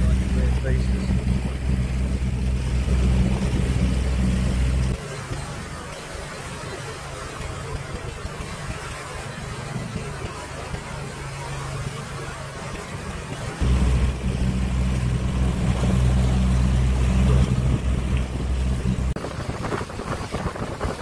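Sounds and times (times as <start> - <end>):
boat engine running: 0.0 - 21.0.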